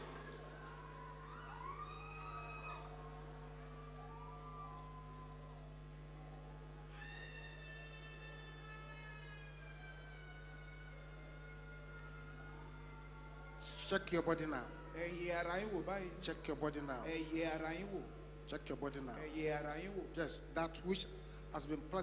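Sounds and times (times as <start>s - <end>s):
crowd wailing voices: 0.0s - 16.3s
low electrical hum: 0.0s - 22.0s.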